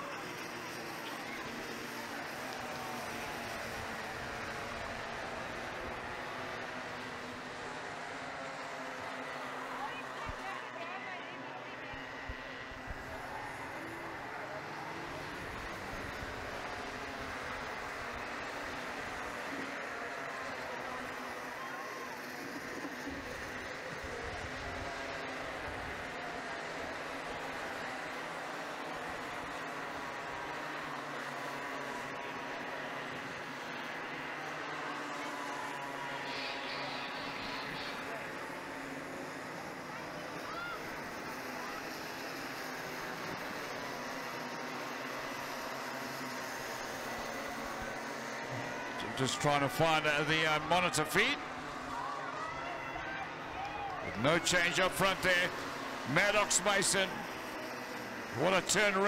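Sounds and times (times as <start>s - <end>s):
racing kart engines: 0.0s - 59.0s.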